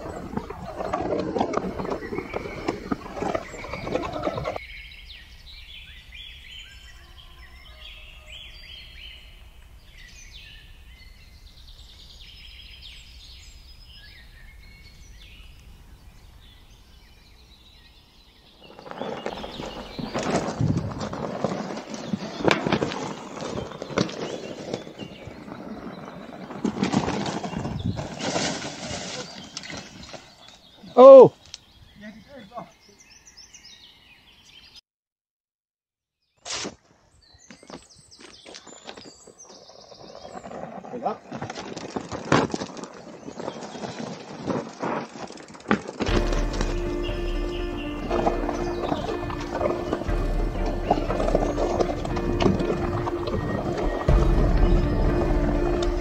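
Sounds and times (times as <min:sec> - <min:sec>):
birds chirping: 0:00.0 - 0:34.8, 0:37.1 - 0:41.9, 0:46.1 - 0:56.0
loud rough clattering: 0:43.8 - 0:56.0.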